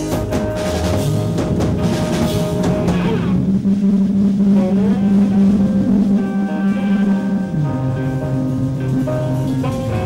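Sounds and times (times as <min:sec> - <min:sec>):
distorted guitars and bass droning: 0:00.0 - 0:10.0
sliding higher tone: 0:01.8 - 0:10.0.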